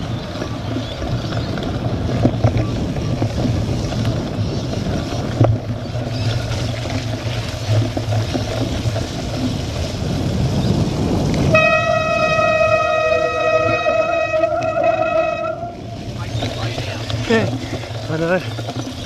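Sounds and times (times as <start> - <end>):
bike tyres rumbling on grass: 0.0 - 19.0
wind on microphone: 0.0 - 19.0.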